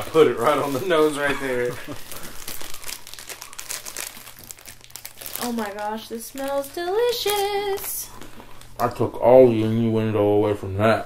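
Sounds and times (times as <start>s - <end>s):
snack wrapper crinkling: 0.4s - 9.0s.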